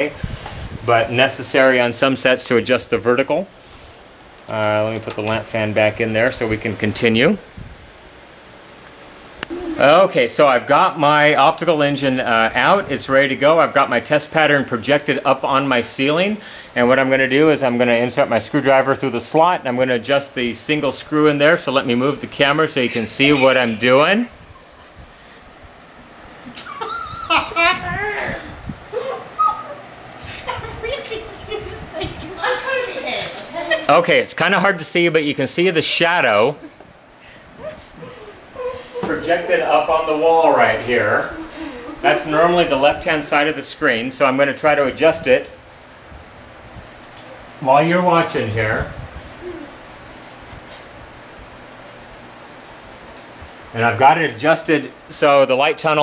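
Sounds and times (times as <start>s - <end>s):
cooling fan noise: 0.0s - 56.0s.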